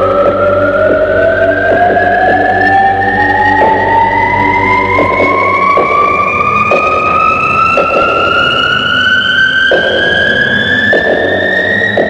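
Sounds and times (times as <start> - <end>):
irregular electronic hits: 0.0 - 12.0
synthesizer tone gliding upward: 0.0 - 12.0.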